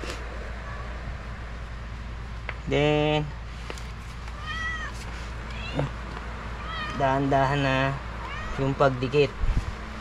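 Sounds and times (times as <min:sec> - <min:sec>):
steady low hum: 0:00.0 - 0:10.0
cat meowing: 0:04.3 - 0:06.0, 0:06.6 - 0:07.2, 0:08.2 - 0:08.8.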